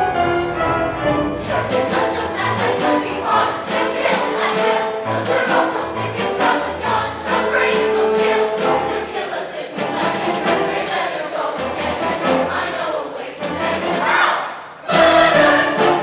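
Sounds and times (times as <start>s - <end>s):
orchestral accompaniment: 0.0s - 14.3s, 14.9s - 16.0s
chorus singing: 0.0s - 16.0s.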